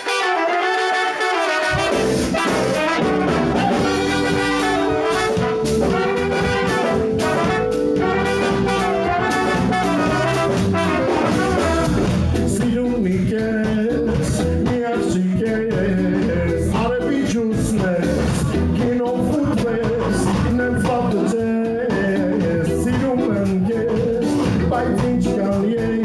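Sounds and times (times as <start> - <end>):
horn section playing: 0.0 - 12.4
bass and drums: 1.6 - 26.0.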